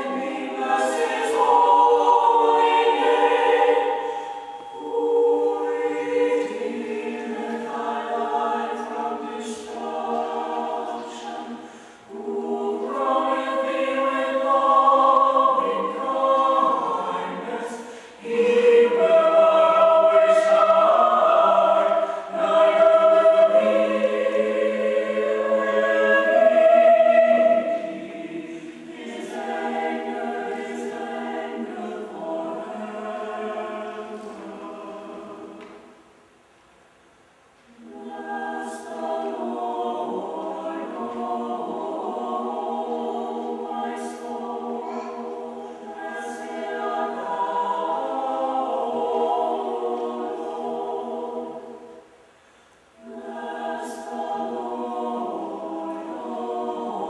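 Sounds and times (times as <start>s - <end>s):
mixed choir singing: 0.0s - 36.3s, 37.7s - 57.0s.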